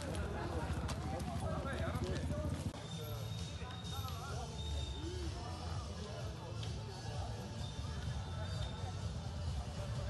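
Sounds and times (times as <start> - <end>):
motorcycle engine idling: 0.0 - 2.8
people talking: 0.0 - 10.0.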